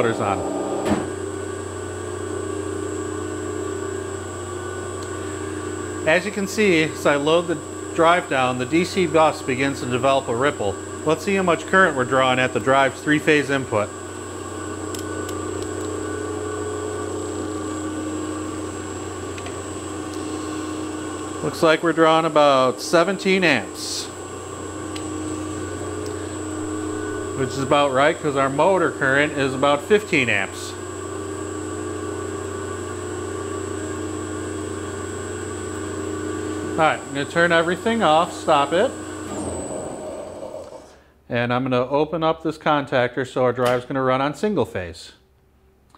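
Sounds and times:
low hum: 0:00.0 - 0:02.7, 0:24.9 - 0:29.6, 0:39.1 - 0:41.1
high steady whine: 0:00.0 - 0:32.3, 0:34.0 - 0:41.0
electric motors humming: 0:00.0 - 0:41.0
electric motors whirring: 0:24.2 - 0:29.8, 0:36.0 - 0:41.0.

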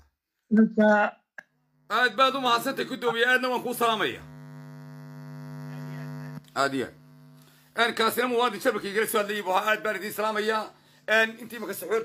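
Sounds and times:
steady hum with overtones: 0:01.6 - 0:12.0.

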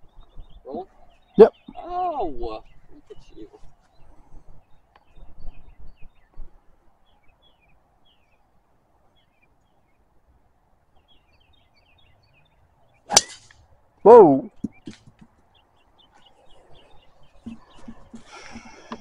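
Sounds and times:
golf club striking ball: 0:13.1 - 0:13.6.

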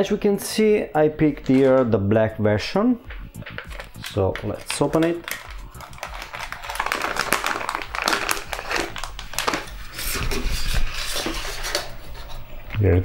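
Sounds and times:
plastic bag crinkling: 0:03.4 - 0:11.8.

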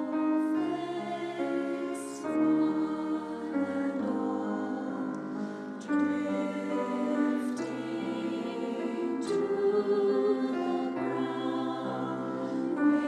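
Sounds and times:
piano accompaniment: 0:00.0 - 0:13.0
women's choir singing: 0:00.0 - 0:13.0.

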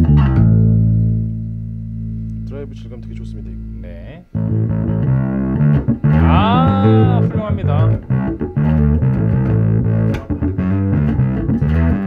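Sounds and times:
overdriven electric bass notes: 0:00.0 - 0:12.0.

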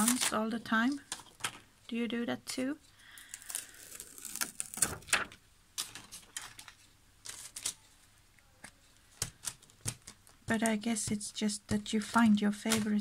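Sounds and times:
plastic sheet rustling: 0:00.0 - 0:00.4.

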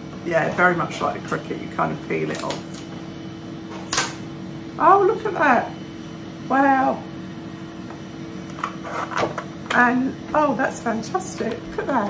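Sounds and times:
fan hum with fixed tones: 0:00.0 - 0:12.0.

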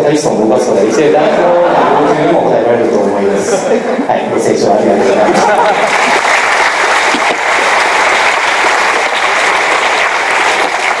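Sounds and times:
audience applauding: 0:05.3 - 0:11.0.

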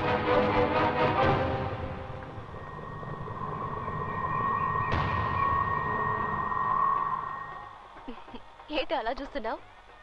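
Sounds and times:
low rumble: 0:01.9 - 0:08.0.

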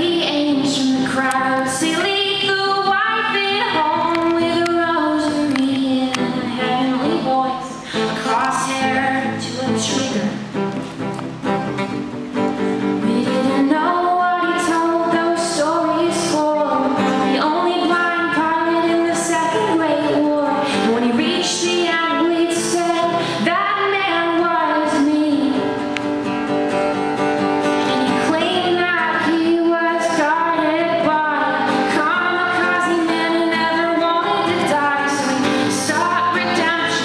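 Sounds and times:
woman singing into a microphone: 0:00.0 - 0:10.6, 0:12.8 - 0:25.9, 0:27.7 - 0:37.0
acoustic guitar strumming: 0:00.0 - 0:37.0.

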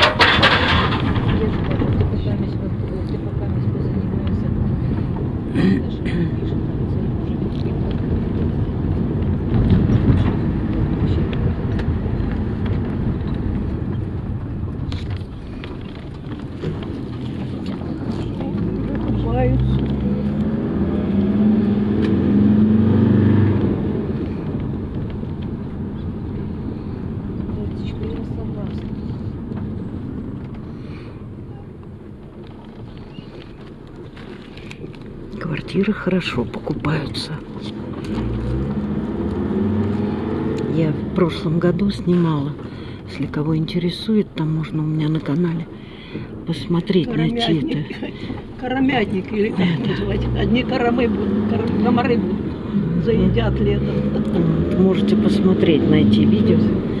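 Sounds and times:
bus diesel engine rumble: 0:00.0 - 0:57.0.

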